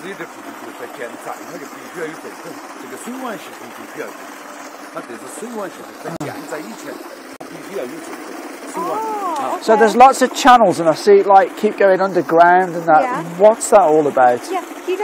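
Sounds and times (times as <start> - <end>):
water gushing into stone channel: 0.0 - 15.0.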